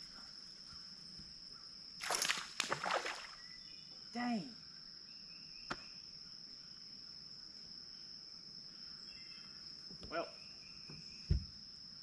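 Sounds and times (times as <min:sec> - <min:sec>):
insects droning: 0:00.0 - 0:12.0
dull thud: 0:10.9 - 0:11.6.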